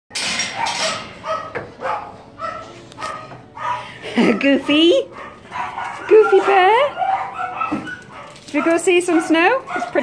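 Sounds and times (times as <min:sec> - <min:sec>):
dogs barking in play: 0:00.4 - 0:10.0.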